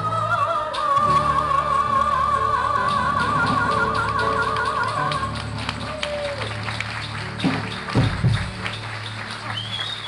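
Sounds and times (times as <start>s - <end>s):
woman singing with wide vibrato: 0.0s - 5.6s
taps and claps: 4.0s - 10.0s.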